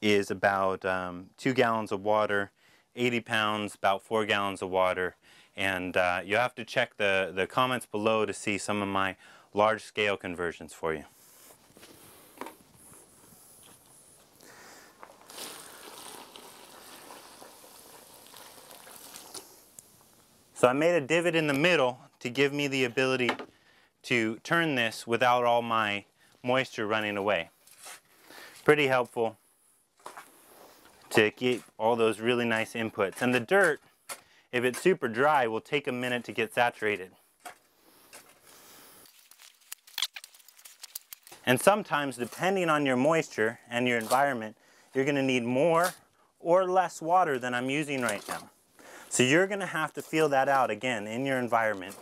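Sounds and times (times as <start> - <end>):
water splashing into soil: 15.0 - 19.9.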